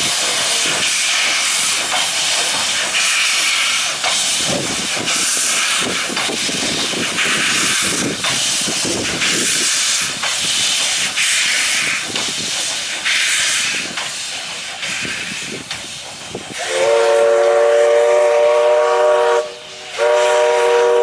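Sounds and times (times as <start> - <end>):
steam locomotive chuffing and hissing: 0.0 - 21.0
steam whistle chord: 16.6 - 21.0.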